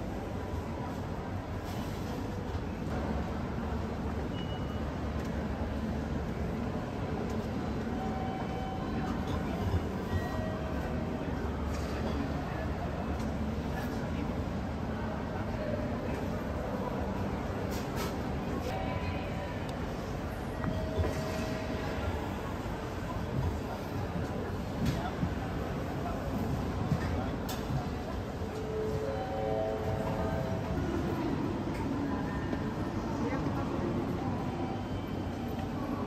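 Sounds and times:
crowd din in a concourse: 0:00.0 - 0:36.0.

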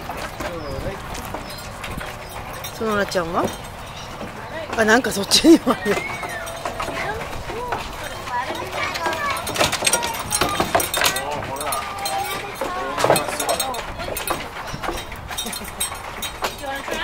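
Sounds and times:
people talking: 0:02.6 - 0:03.6, 0:04.4 - 0:14.8, 0:16.4 - 0:17.0.

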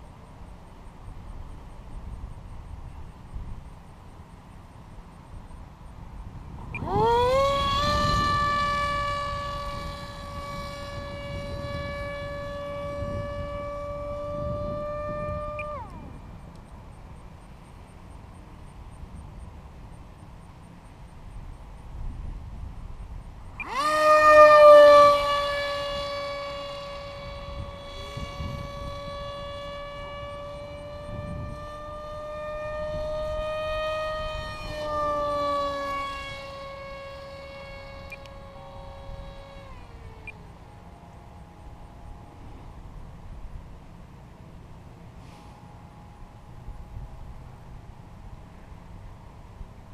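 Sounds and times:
model plane motor whine: 0:00.0 - 0:49.9.

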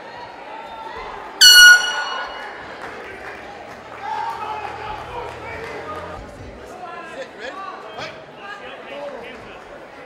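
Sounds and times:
horn blast: 0:01.4 - 0:02.9.

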